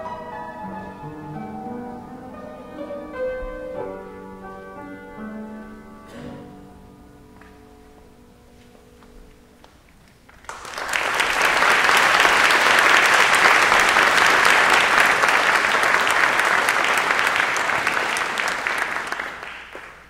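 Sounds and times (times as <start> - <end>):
audience applauding: 10.2 - 20.0.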